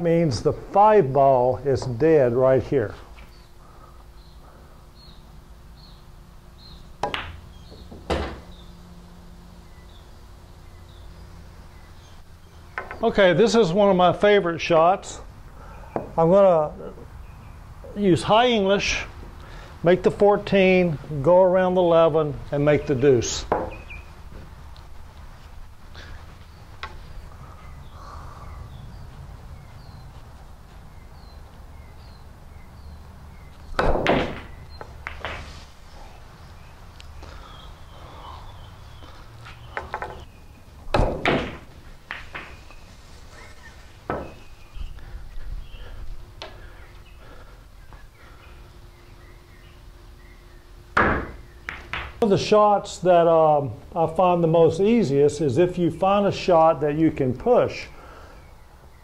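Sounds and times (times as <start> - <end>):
ball dropping into pocket: 7.0 - 7.4
billiard balls clacking: 7.0 - 8.5, 12.8 - 13.1, 23.4 - 24.4, 33.8 - 35.6, 39.7 - 40.3, 40.9 - 42.8, 44.0 - 44.5, 51.0 - 52.2
cue striking ball: 7.0 - 8.5, 40.9 - 42.6, 44.1 - 44.4, 51.0 - 52.2.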